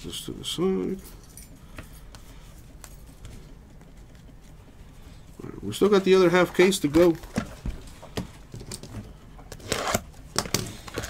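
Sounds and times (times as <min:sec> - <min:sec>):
plastic wrapping rustling: 0:05.7 - 0:08.6.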